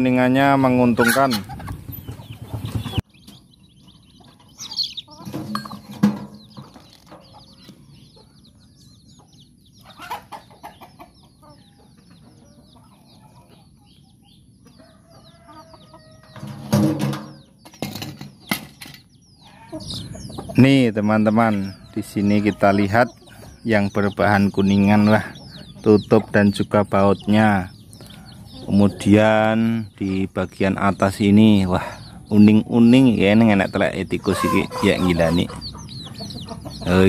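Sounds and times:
chickens clucking: 0:00.0 - 0:37.0
chicks peeping: 0:00.0 - 0:37.0.

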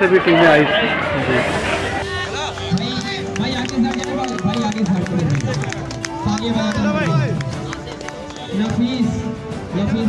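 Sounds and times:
man speaking over loudspeaker: 0:00.0 - 0:10.0
music playing: 0:00.0 - 0:10.0.

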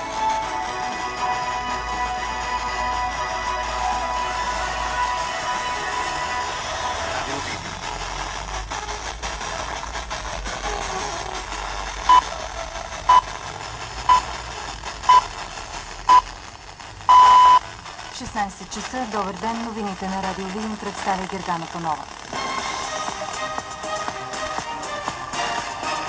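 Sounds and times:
radio background hiss: 0:00.0 - 0:26.0
radio music: 0:00.0 - 0:26.0
radio time signal pips: 0:12.0 - 0:12.4, 0:13.0 - 0:13.4, 0:14.0 - 0:14.4, 0:15.0 - 0:15.3, 0:16.0 - 0:23.0.

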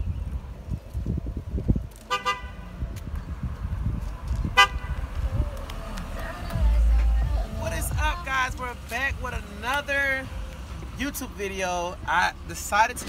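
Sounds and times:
car horn honking: 0:02.1 - 0:02.7, 0:04.5 - 0:05.0
low rumble: 0:02.6 - 0:09.6.

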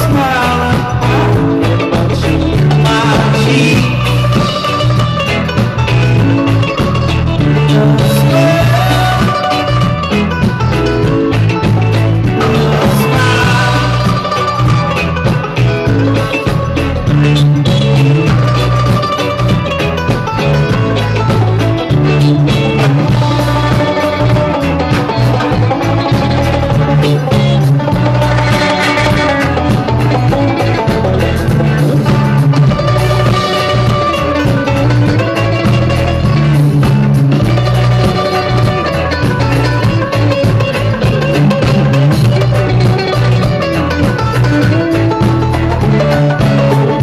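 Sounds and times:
acoustic guitar: 0:00.0 - 0:47.0
bass line: 0:00.0 - 0:47.0
drums: 0:00.0 - 0:47.0
electric guitar: 0:00.0 - 0:47.0.

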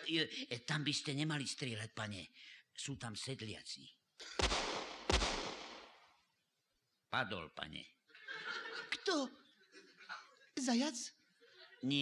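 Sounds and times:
gunshot with echo: 0:04.4 - 0:06.0.

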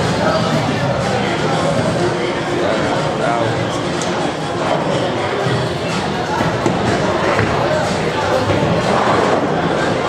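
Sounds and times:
background music: 0:00.0 - 0:10.0
indistinct voices talking: 0:00.0 - 0:10.0.

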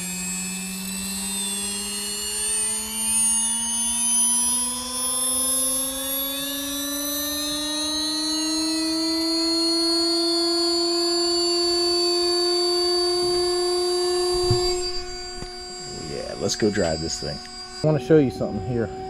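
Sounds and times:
electric whine rising in pitch: 0:00.0 - 0:19.0
faint high whine: 0:00.0 - 0:19.0.

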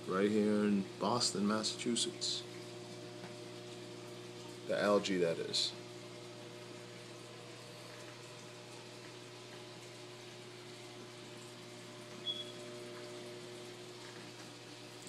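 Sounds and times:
aquarium pump hum: 0:00.0 - 0:15.0.

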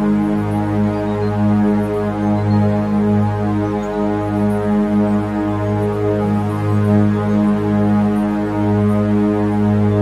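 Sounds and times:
electronic meditation drone: 0:00.0 - 0:10.0.

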